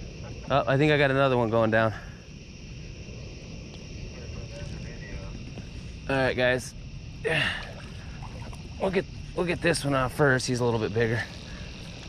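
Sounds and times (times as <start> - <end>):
insects chirping at night: 0.0 - 12.0.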